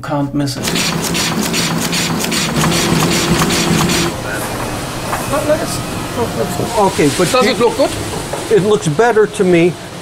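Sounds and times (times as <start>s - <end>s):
printing press clattering: 0.6s - 10.0s
steady hum: 0.6s - 10.0s.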